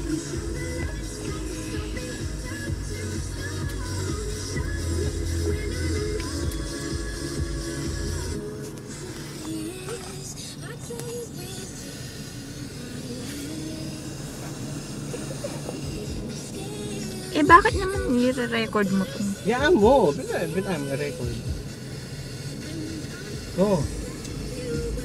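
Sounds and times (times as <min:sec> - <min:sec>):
car stereo music with heavy bass: 0:00.0 - 0:25.0.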